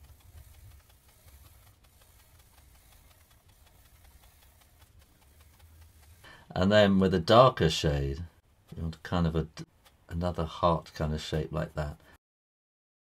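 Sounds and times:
pencil scratching on paper: 0:00.0 - 0:07.4.

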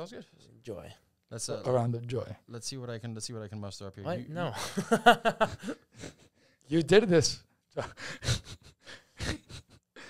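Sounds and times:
quiet breathy laughter: 0:07.8 - 0:10.0.

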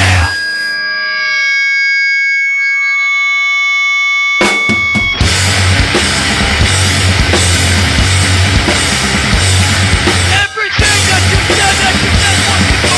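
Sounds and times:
hardcore punk band playing: 0:00.0 - 0:00.4, 0:04.4 - 0:12.9
electric guitar feedback tone: 0:00.0 - 0:12.9
drums crashing: 0:04.4 - 0:12.9.

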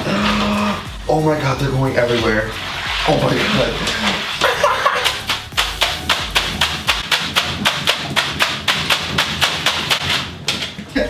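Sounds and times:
water beads pelting bathtub and tiles: 0:00.0 - 0:11.0.

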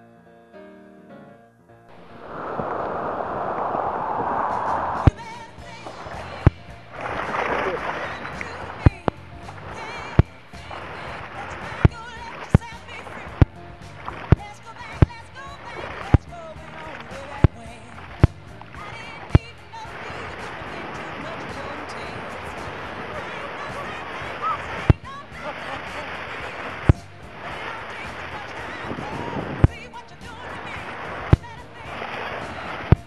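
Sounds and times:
background music: 0:00.0 - 0:33.0
surf rushing and splashing: 0:01.9 - 0:33.0.

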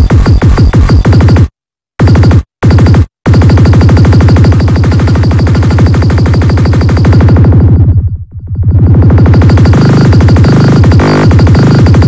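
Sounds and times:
dense synth layers: 0:02.8 - 0:12.0
fast rolling bass line: 0:03.3 - 0:12.0.

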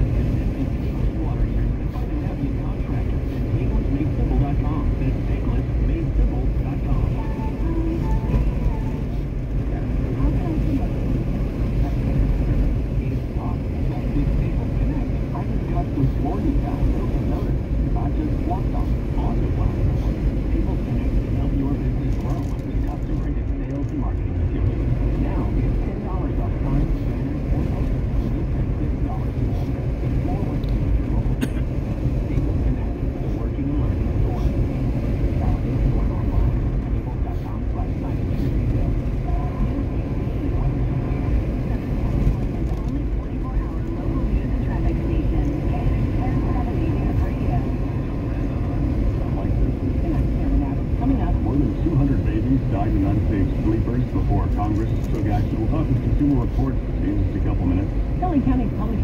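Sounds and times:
road and engine rumble in car: 0:00.0 - 0:59.0.

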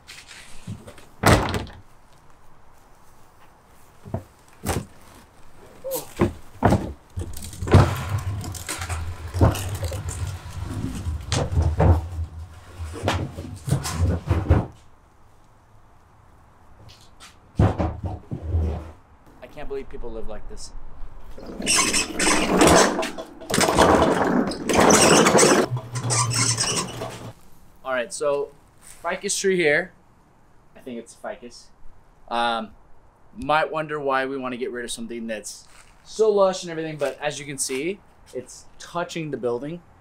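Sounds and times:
refrigerator scraping on concrete: 0:06.2 - 0:14.8, 0:18.0 - 0:19.0, 0:21.3 - 0:27.4
metal parts rattling: 0:07.2 - 0:11.8, 0:21.4 - 0:27.4.

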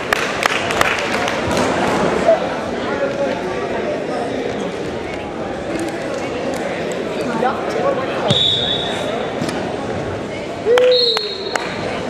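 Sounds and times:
crowd chatter in a gymnasium: 0:00.0 - 0:12.0
referee whistle blasts: 0:08.3 - 0:09.1, 0:10.9 - 0:11.5.

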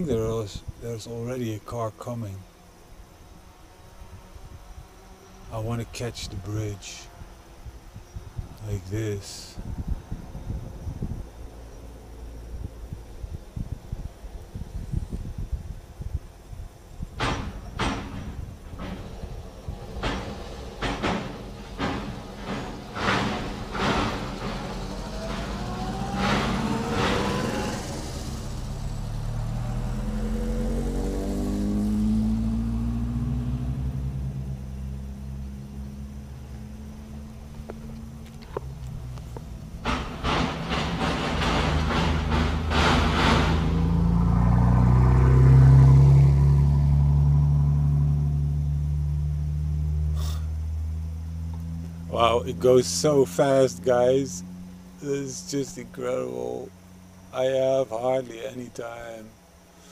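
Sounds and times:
car engines passing: 0:00.0 - 0:59.9
sharp knocks: 0:17.2 - 0:28.8, 0:37.7 - 0:44.6.

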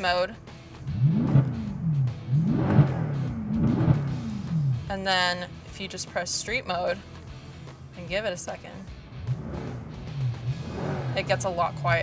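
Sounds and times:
car engine revving: 0:00.6 - 0:05.7, 0:07.6 - 0:12.0.

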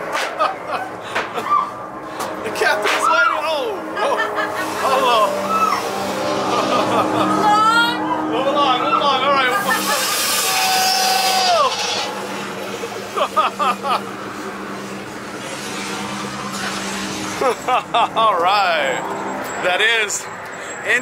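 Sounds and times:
music drone: 0:00.0 - 0:21.0
voices yelling and screaming: 0:00.6 - 0:01.9, 0:02.5 - 0:12.4
long held cry: 0:10.0 - 0:12.2.

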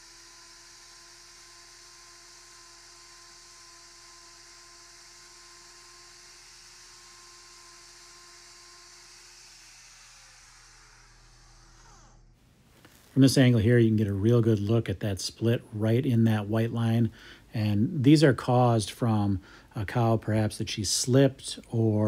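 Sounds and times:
angle grinder whining: 0:00.0 - 0:13.2.

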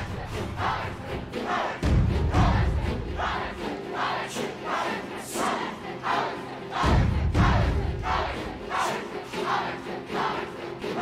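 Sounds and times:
group chanting: 0:00.0 - 0:11.0.

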